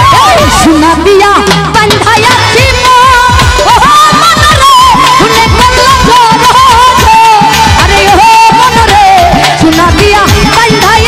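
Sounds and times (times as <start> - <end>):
woman singing: 0.0 - 11.0
hand drums: 1.4 - 11.0.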